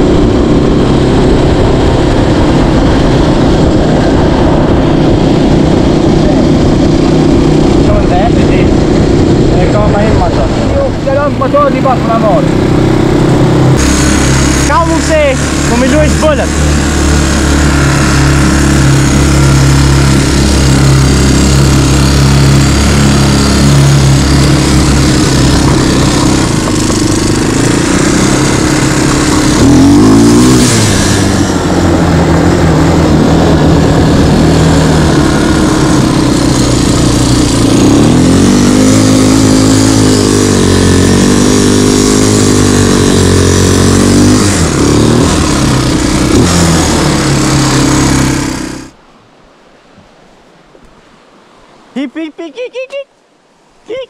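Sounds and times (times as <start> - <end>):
quad bike engine revving: 0.0 - 49.0.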